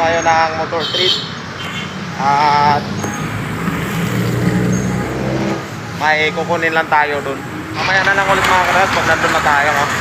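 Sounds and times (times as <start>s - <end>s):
vehicle passing: 1.4s - 10.0s.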